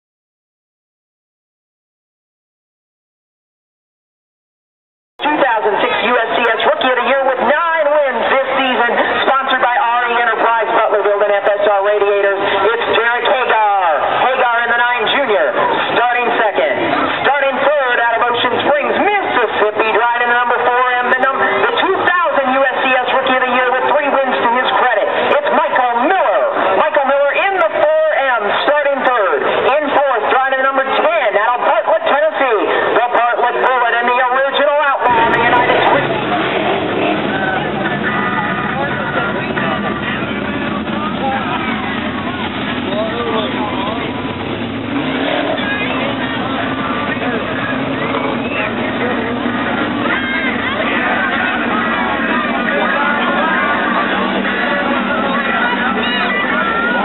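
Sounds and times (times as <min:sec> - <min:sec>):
race car engines running: 0:05.3 - 0:57.0.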